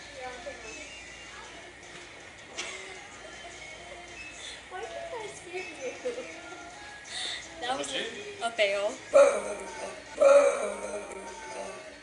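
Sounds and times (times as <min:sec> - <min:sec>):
store background hum: 0:00.0 - 0:12.0.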